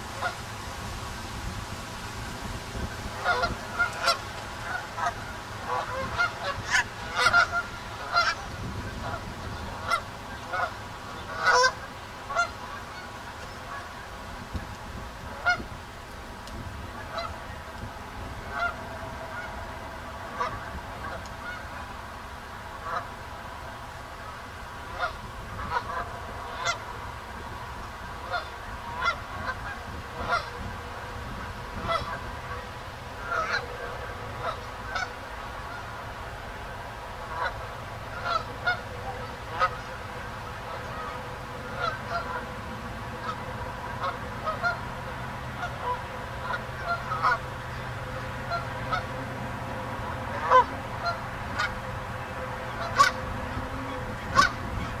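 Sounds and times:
geese honking: 0:00.0 - 0:55.0.

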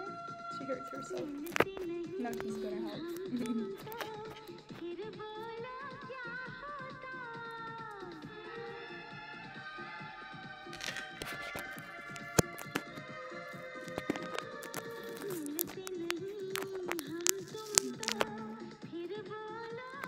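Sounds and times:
film song playing: 0:00.0 - 0:18.9
sharp clicks: 0:01.0 - 0:04.8, 0:10.8 - 0:13.1, 0:13.8 - 0:18.7.

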